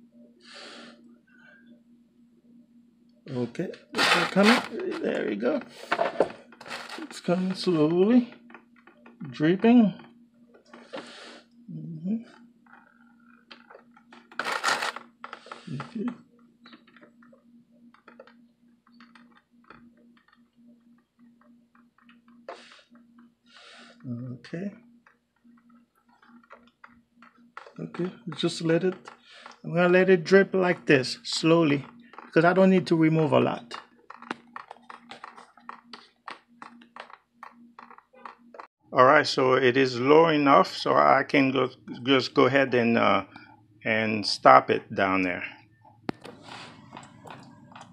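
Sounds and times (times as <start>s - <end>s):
steady low hum: 0.0s - 47.9s
screwdriver scraping: 4.0s - 5.2s, 6.6s - 7.9s, 14.3s - 15.6s.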